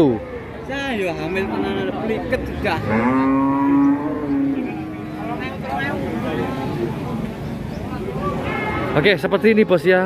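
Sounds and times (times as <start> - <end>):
cow mooing: 2.7 - 5.3.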